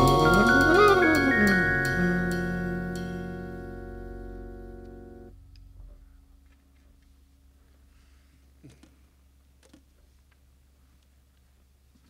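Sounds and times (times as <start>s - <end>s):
drum-kit stroke: 0.0s - 3.5s
jazz band final chord: 0.0s - 5.3s
upright bass dying away: 0.0s - 6.3s.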